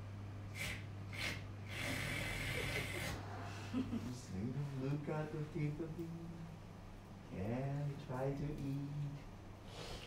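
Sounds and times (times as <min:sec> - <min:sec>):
man slurping with mouth: 0:00.5 - 0:03.2.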